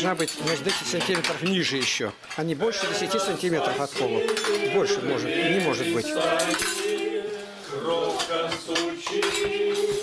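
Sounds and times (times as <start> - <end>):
dishes and cutlery clinking: 0.0 - 7.2, 7.9 - 10.0
voices: 0.0 - 10.0.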